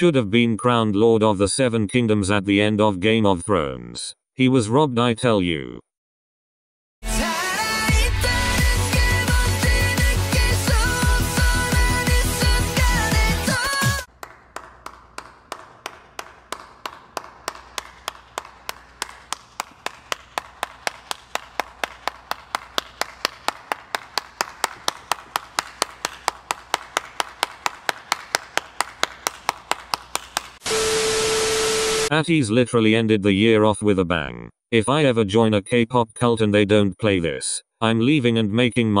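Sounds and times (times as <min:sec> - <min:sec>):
person clapping: 0:14.1 - 0:30.6
tv static hiss: 0:30.7 - 0:32.1.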